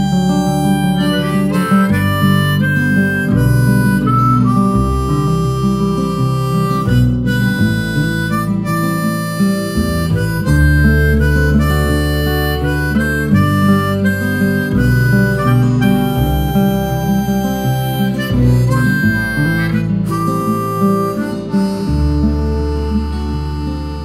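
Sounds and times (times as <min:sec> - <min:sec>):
acoustic guitar accompaniment: 0:00.0 - 0:24.0
harmonica melody: 0:00.0 - 0:24.0.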